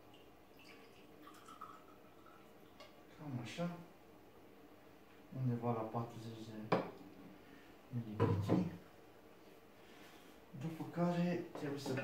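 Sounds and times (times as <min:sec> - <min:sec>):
liquid trickling into glass: 0:00.0 - 0:03.0.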